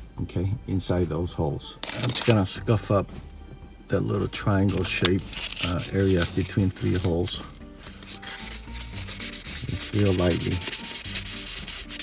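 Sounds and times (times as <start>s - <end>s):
sandpaper scuffing glass: 1.8s - 2.4s, 4.7s - 12.0s.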